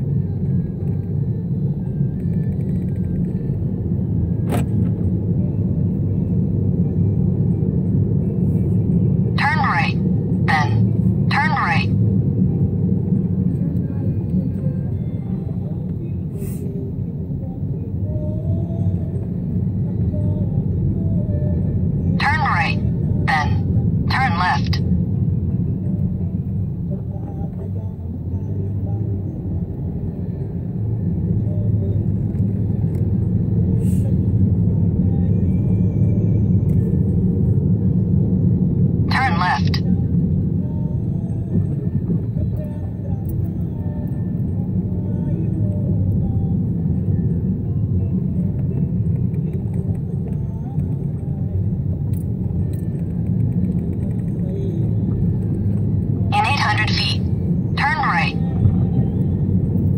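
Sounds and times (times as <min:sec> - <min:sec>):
car driving slowly from inside: 0:00.0 - 0:09.4, 0:12.0 - 0:22.2, 0:24.9 - 0:39.1, 0:39.9 - 0:56.3, 0:58.4 - 0:59.9.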